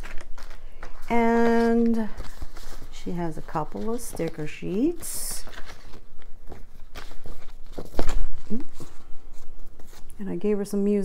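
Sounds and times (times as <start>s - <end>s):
sticker sheets tapping and rustling: 0.0s - 10.2s.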